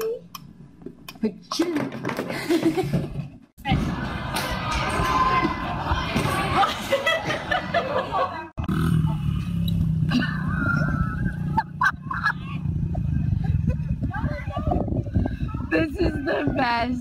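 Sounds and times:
voices: 3.6s - 17.0s
steady low rumble: 8.6s - 16.1s
different low rumble: 8.6s - 17.0s.

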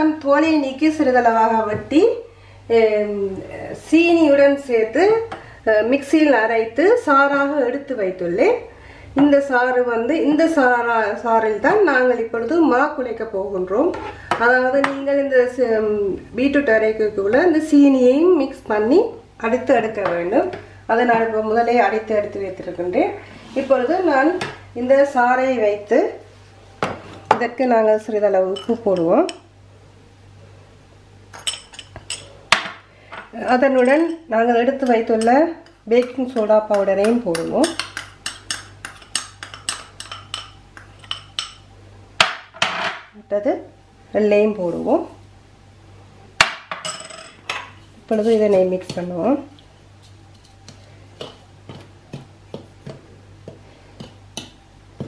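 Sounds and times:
woman talking: 0.0s - 26.3s, 27.3s - 29.4s, 33.3s - 37.8s, 43.2s - 45.2s, 48.1s - 49.6s
metal spoon clinking on bowls: 28.5s - 29.4s, 31.3s - 32.7s, 33.5s - 41.7s, 46.7s - 47.8s.

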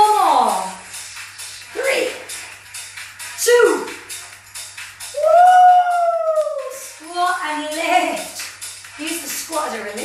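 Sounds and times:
woman's drawn-out ooh exclamation: 5.2s - 6.8s.

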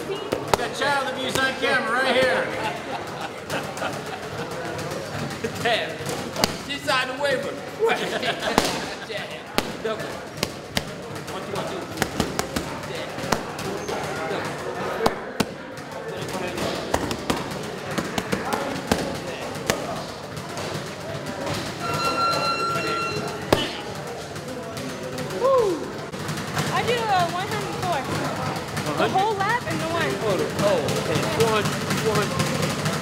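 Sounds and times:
gym chatter: 0.0s - 33.0s
boxing gloves smacking mitts: 0.3s - 1.6s, 4.8s - 6.8s, 8.4s - 20.9s
steady electronic beep: 21.8s - 23.6s.

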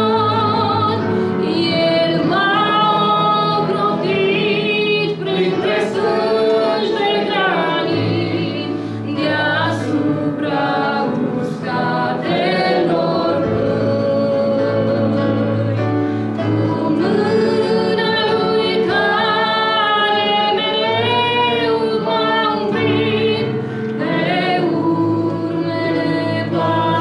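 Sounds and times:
woman singing into a microphone: 16.4s - 27.0s.

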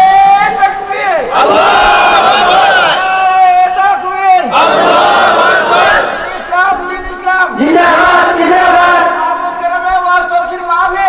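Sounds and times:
amplified voice chanting: 0.0s - 11.0s.

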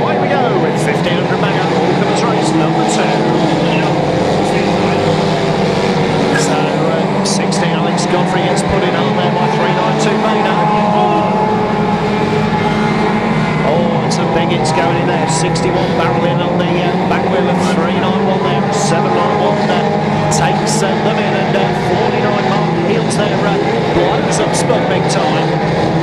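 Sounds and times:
racing car engines revving: 0.0s - 26.0s.

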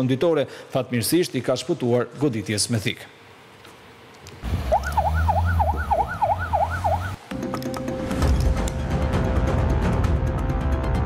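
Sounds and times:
emergency siren wailing: 4.4s - 7.2s.

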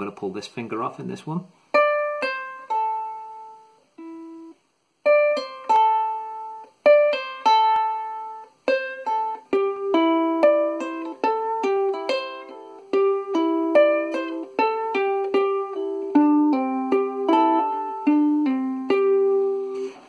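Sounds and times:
ukulele plucked notes: 1.7s - 20.0s.

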